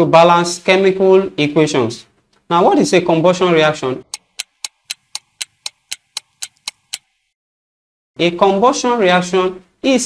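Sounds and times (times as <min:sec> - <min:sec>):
clock ticking: 0:04.1 - 0:07.2.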